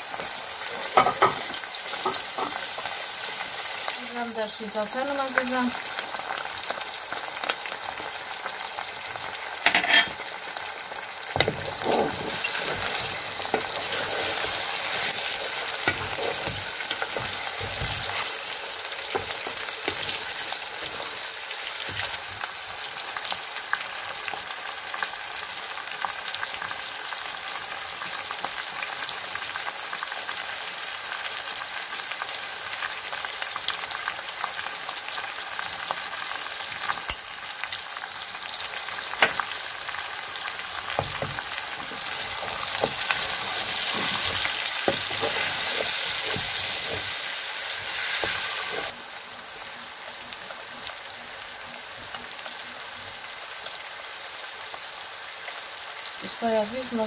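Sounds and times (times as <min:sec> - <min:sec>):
food sizzling in hot oil: 0:00.0 - 0:57.0
wooden spoon knocking on pot: 0:40.9 - 0:43.1.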